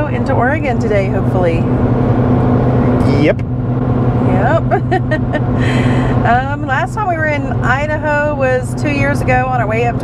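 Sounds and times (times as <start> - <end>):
truck interior road drone: 0.0 - 10.0
person laughing: 4.6 - 6.0.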